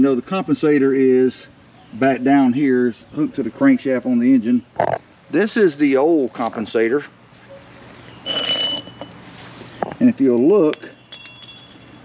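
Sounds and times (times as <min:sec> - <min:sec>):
metal scraping on concrete: 0:08.2 - 0:09.7.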